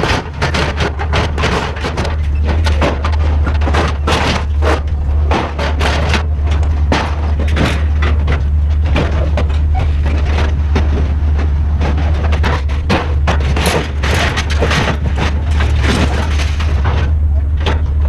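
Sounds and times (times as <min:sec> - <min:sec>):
low rumble: 0:00.0 - 0:18.0
scrap metal clanking: 0:00.0 - 0:18.0.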